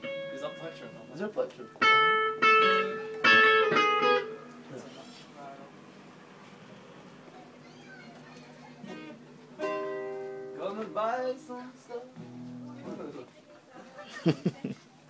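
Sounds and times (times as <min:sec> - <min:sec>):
guitar chords strummed: 0:00.0 - 0:04.6, 0:08.9 - 0:11.3, 0:12.2 - 0:13.2
faint voices: 0:04.6 - 0:09.6.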